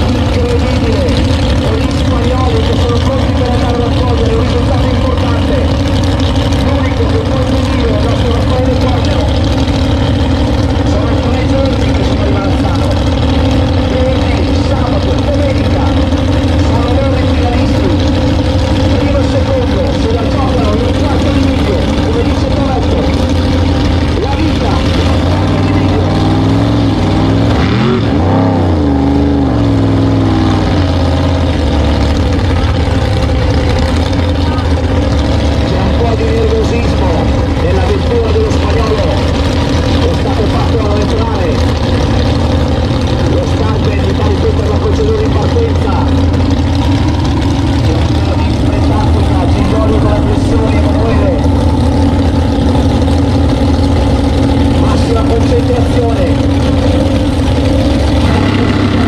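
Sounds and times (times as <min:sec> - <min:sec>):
drag racing car engines rumbling: 0:00.0 - 0:59.0.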